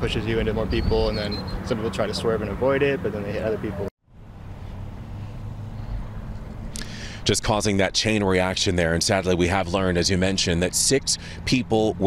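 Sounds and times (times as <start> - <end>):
highway traffic rumble: 0.0 - 12.0.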